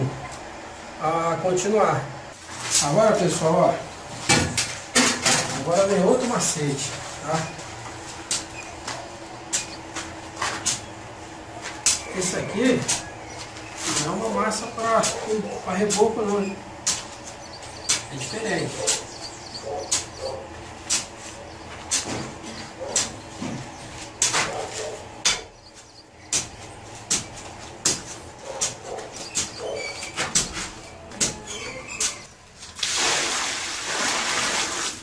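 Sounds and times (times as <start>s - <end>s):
hoe scraping on concrete: 11.6s - 32.4s
water pouring from bucket: 32.7s - 35.0s.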